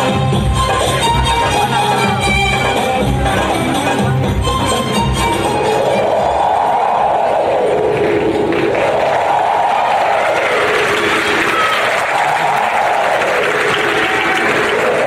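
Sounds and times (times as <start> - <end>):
crowd cheering: 5.6 - 15.0
audience clapping: 7.8 - 15.0.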